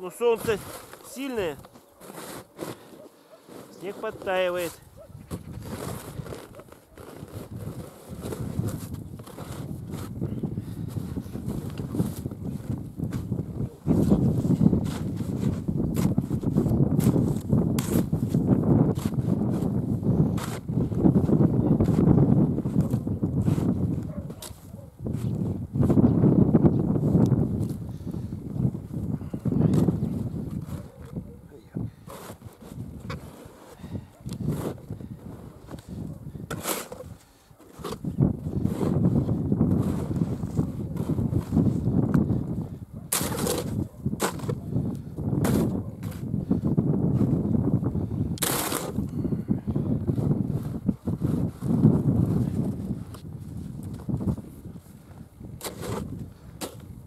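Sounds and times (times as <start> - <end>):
shovel digging snow: 0.0 - 26.0, 29.7 - 31.2, 31.9 - 42.0, 43.1 - 44.6, 45.4 - 46.4, 48.4 - 49.1, 50.1 - 53.2, 55.4 - 57.0
gusty wind on microphone: 4.8 - 37.2, 37.8 - 57.0.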